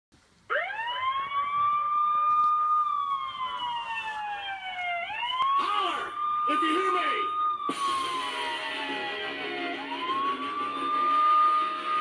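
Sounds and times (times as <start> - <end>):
siren-like wailing tone: 0.5 - 12.0.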